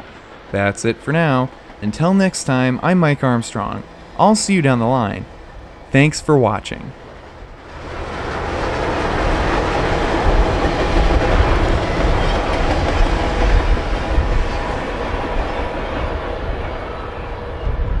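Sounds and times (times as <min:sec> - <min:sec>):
train cars rumbling on rails: 0:00.0 - 0:18.0.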